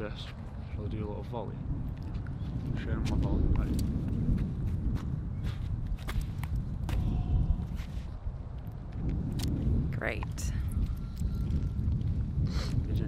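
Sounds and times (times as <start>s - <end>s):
wind noise on microphone: 0.0s - 13.0s
footsteps on paved path: 0.1s - 0.8s, 1.8s - 13.0s.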